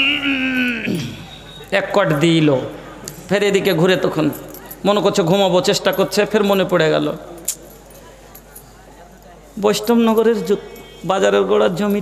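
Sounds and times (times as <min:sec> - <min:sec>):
man speaking over microphone: 0:01.7 - 0:07.3, 0:09.6 - 0:12.0.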